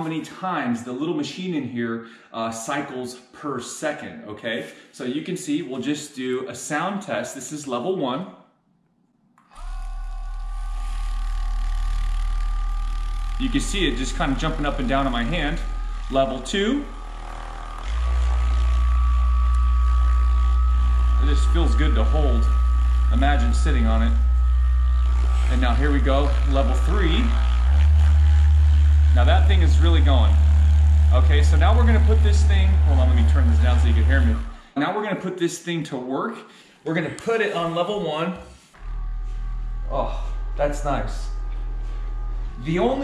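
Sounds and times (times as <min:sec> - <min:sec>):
vibrating motor buzzing hum: 0:09.4 - 0:34.7, 0:38.8 - 0:43.0.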